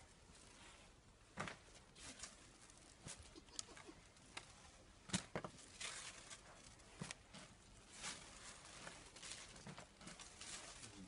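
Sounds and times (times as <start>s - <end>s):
garments and packaging rustling: 0.0s - 11.0s.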